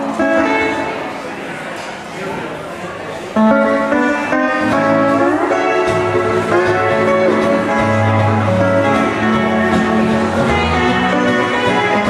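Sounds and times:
electric steel guitar: 0:00.0 - 0:01.3, 0:03.4 - 0:12.0
acoustic guitar accompaniment: 0:00.0 - 0:02.0, 0:03.3 - 0:12.0.

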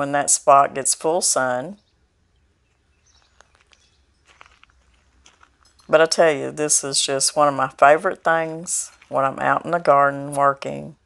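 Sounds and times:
footsteps on gravel path: 0:02.6 - 0:10.0.

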